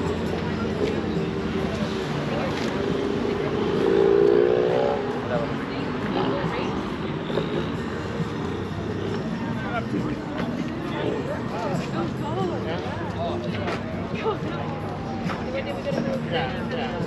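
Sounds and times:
people's voices: 0:00.0 - 0:17.0.

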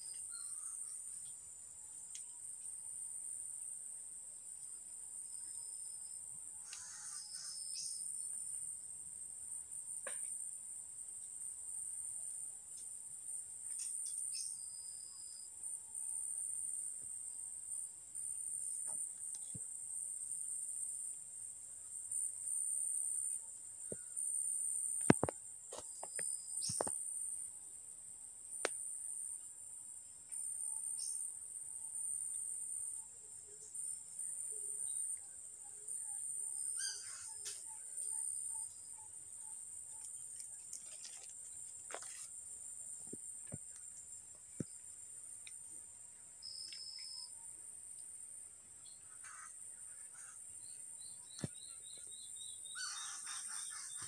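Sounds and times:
insects trilling: 0:00.0 - 0:54.0.

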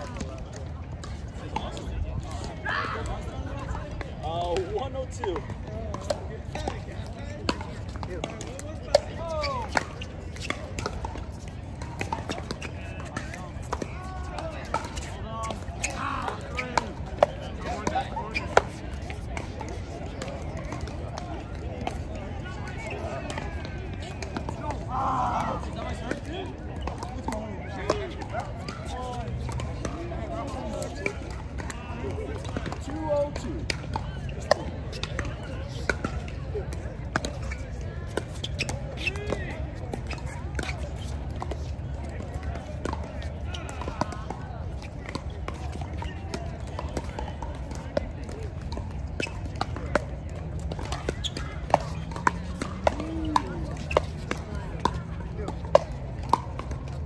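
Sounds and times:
voices: 0:00.1 - 0:57.0.

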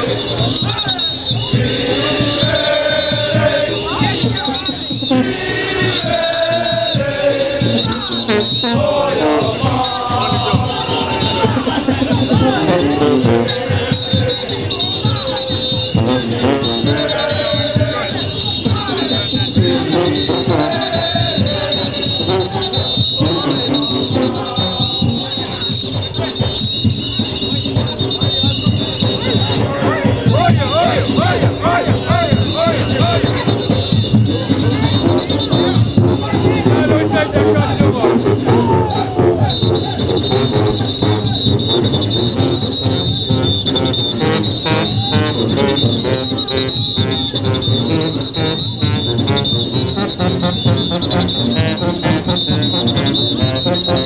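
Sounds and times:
steady shrill high tone: 0:00.0 - 0:29.6, 0:30.4 - 0:36.7, 0:38.1 - 0:54.0
brass horns: 0:00.0 - 0:54.0
cowbells: 0:00.0 - 0:54.0
crowd voices: 0:00.0 - 0:54.0
driving percussion beat: 0:00.0 - 0:54.0
drums: 0:00.0 - 0:54.0
parade band playing: 0:00.0 - 0:54.0.

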